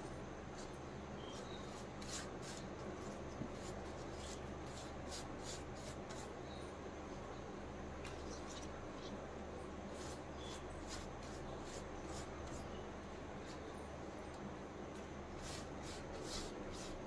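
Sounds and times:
faint low hum: 0:00.0 - 0:17.0
hand spreading batter on leaves: 0:00.1 - 0:06.4, 0:09.9 - 0:12.8, 0:15.3 - 0:17.0.

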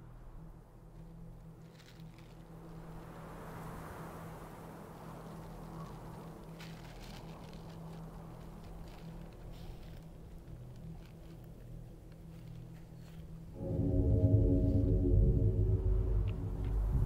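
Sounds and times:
low steady hum: 0:00.0 - 0:17.0
soft hiss: 0:00.0 - 0:17.0.

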